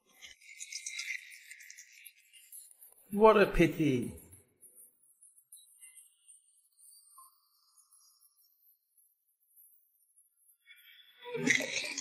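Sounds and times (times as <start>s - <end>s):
dice rattling in a cup: 0.1s - 2.7s.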